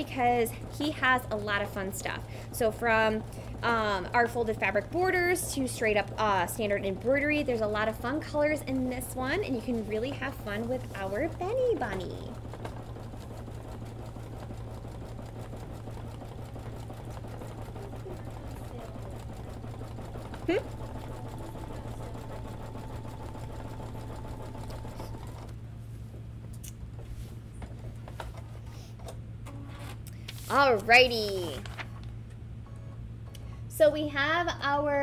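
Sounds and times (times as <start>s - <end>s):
embroidery machine stitching: 0.0s - 25.6s.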